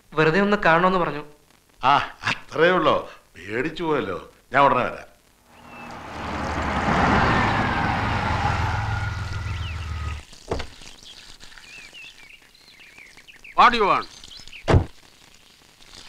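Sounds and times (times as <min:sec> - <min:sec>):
faint bird chirps: 0:05.5 - 0:06.0, 0:08.8 - 0:10.2, 0:10.8 - 0:14.7
car engine running: 0:05.6 - 0:10.2
thunk: 0:10.5 - 0:10.7, 0:14.7 - 0:14.9.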